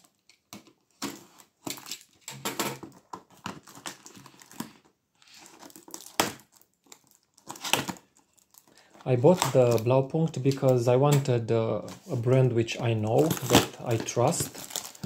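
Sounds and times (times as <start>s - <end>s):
tape and plastic crinkling: 0.0s - 15.0s.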